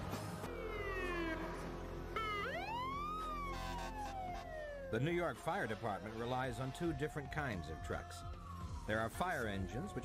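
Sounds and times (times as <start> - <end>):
fire engine siren wailing: 0.4 - 10.0.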